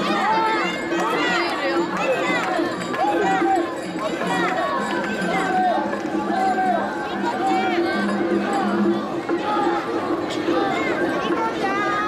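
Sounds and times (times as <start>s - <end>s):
shouted call: 0.0s - 12.0s.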